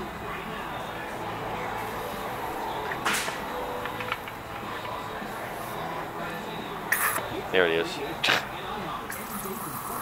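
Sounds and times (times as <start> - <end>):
air hissing from seal: 6.9 - 7.2.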